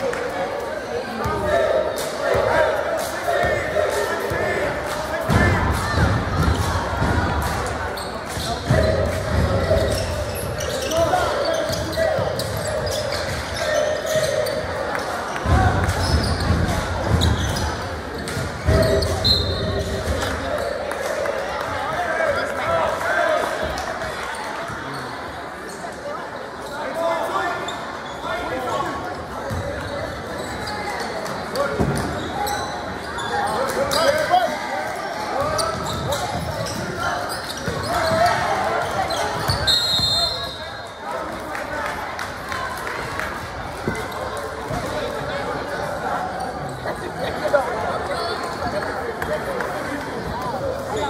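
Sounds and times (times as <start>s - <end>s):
indistinct voices echoing: 0.0s - 51.0s.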